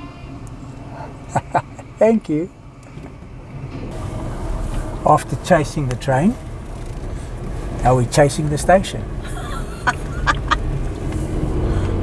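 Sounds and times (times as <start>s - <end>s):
freight train rumble: 0.0s - 12.0s.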